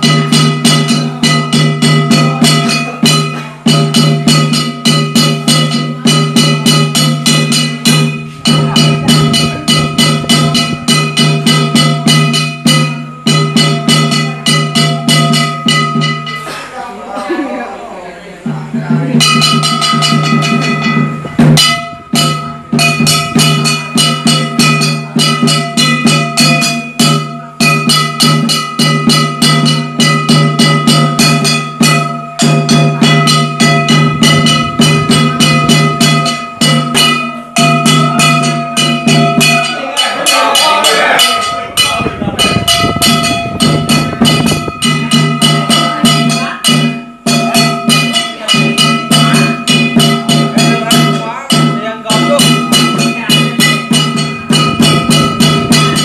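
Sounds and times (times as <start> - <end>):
drum beating fast rhythm: 0.0 - 17.5, 18.4 - 56.0
ringing metal percussion: 0.0 - 17.5, 18.4 - 56.0.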